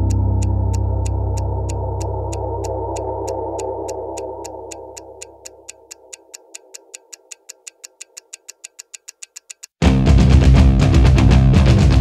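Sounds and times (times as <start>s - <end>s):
droning chord: 0.0s - 6.9s
clock-like ticking: 0.0s - 9.8s
metal band with fuzz guitars: 9.8s - 12.0s.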